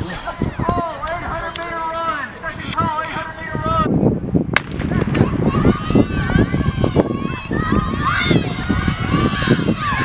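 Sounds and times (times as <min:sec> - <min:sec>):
spectators' voices: 0:00.0 - 0:03.9, 0:04.6 - 0:10.0
outdoor noise: 0:00.0 - 0:10.0
sharp starting pistol crack: 0:04.6 - 0:05.1.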